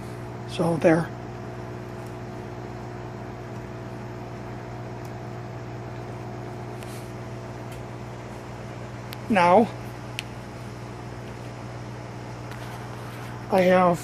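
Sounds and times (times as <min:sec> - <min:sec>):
steady machine hum: 0:00.0 - 0:14.0.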